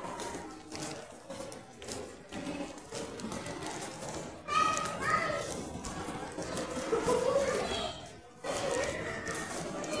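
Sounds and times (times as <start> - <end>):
voices in echoing hall: 0.0 - 10.0.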